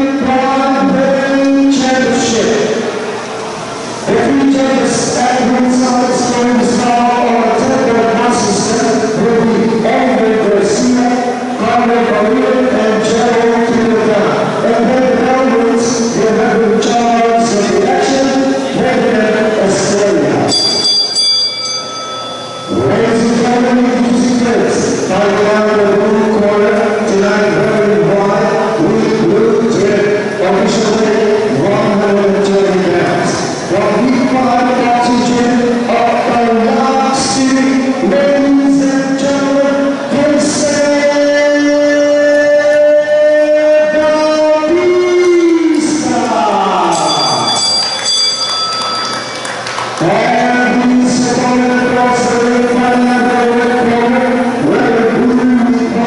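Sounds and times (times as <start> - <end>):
man speaking over pa: 0.0 - 2.9, 4.0 - 20.5, 22.7 - 47.6, 50.0 - 56.0
high ringing tones: 20.5 - 24.4, 46.9 - 49.7
audience applauding: 48.0 - 50.2.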